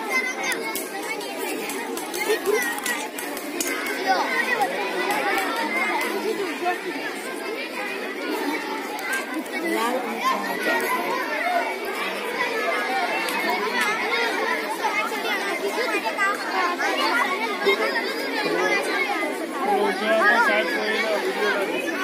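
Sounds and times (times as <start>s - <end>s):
children chattering: 0.0s - 22.0s.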